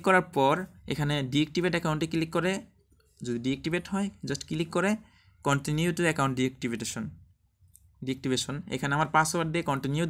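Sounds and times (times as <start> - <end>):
man talking: 0.0 - 7.3, 8.0 - 10.0.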